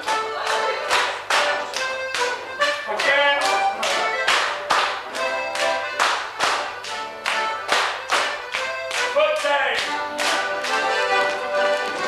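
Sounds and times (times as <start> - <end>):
folk dance tune: 0.0 - 12.0
sharp rhythmic strikes: 0.0 - 12.0.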